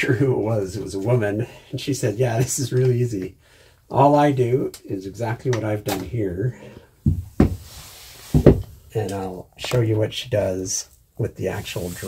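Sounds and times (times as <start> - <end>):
knocks against plywood cabinet: 8.4 - 8.7.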